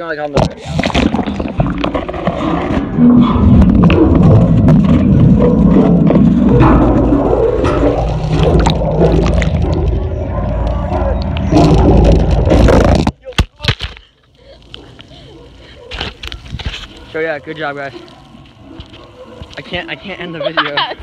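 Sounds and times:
muffled underwater rumble: 0:00.8 - 0:13.1.

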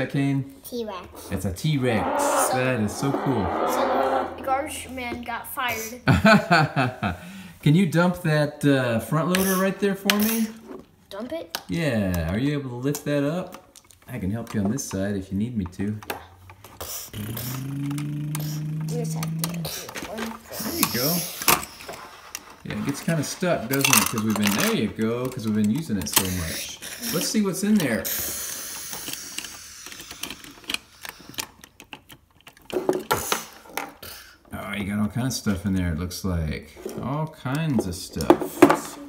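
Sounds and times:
plastic toy parts clicking: 0:15.9 - 0:34.1
person humming machine noise: 0:17.1 - 0:20.9.

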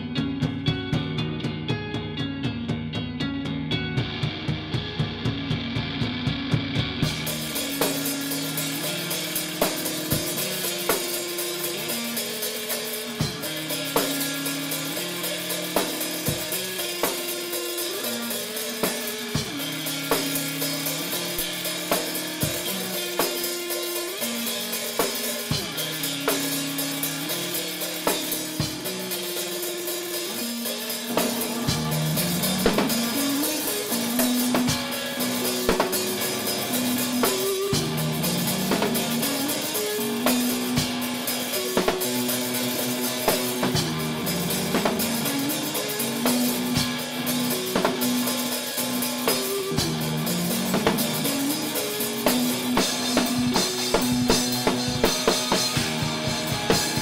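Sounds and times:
electric guitar riff: 0:00.0 - 0:57.0
rock drumming: 0:00.0 - 0:57.0.

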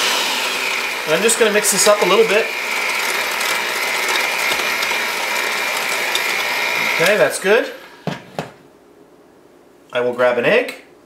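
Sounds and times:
electric hand mixer whine: 0:00.0 - 0:08.1.

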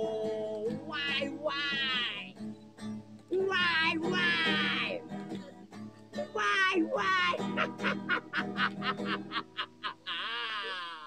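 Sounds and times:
man singing nasally: 0:00.0 - 0:02.4, 0:03.3 - 0:05.1, 0:06.2 - 0:08.3
strummed acoustic guitar: 0:00.0 - 0:10.1.

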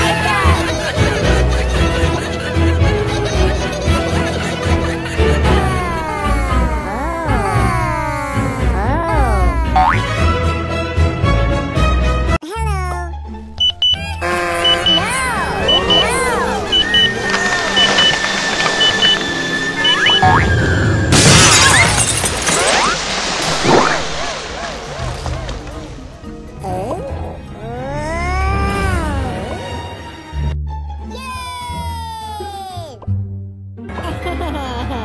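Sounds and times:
background music: 0:00.0 - 0:21.2, 0:25.0 - 0:35.0
paired high beeps: 0:13.6 - 0:15.0, 0:15.6 - 0:18.2, 0:18.8 - 0:19.2, 0:19.8 - 0:20.4
springy cartoon boings: 0:18.8 - 0:20.6
water balloon bursting: 0:21.1 - 0:25.7.

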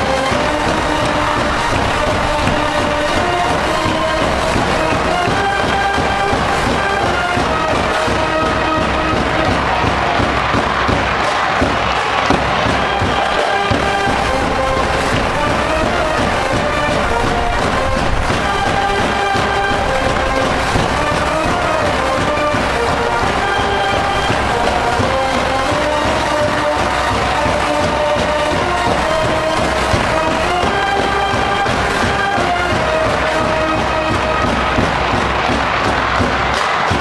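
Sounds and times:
brass band playing: 0:00.0 - 0:37.0
drum beat: 0:00.0 - 0:37.0.

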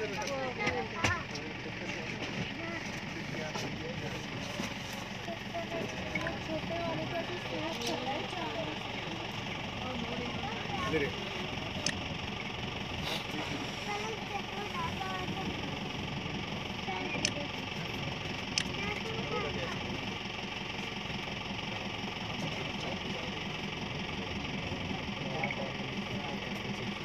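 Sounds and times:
passengers chattering: 0:00.0 - 0:27.0
van engine idling: 0:00.0 - 0:27.0
sharp clicks: 0:11.8 - 0:12.0, 0:17.2 - 0:17.4, 0:18.4 - 0:18.8.

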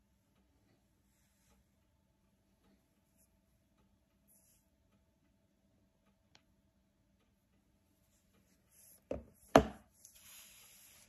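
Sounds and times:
knocks on tabletop: 0:09.1 - 0:09.8.

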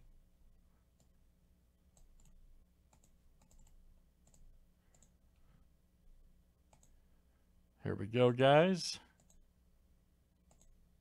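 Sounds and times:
computer mouse and keyboard clicks: 0:01.9 - 0:05.2, 0:06.7 - 0:07.0, 0:10.4 - 0:10.8
man speaking: 0:07.8 - 0:09.1.

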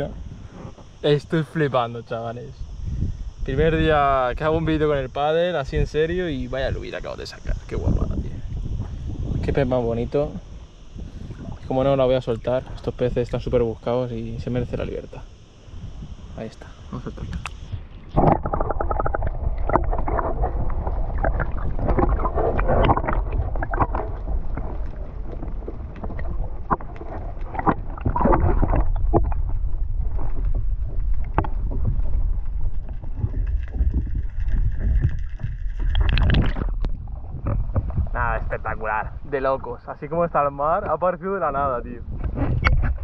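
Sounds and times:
muffled underwater rumble: 0:00.0 - 0:43.0
small splashes and clicks: 0:32.6 - 0:37.9.

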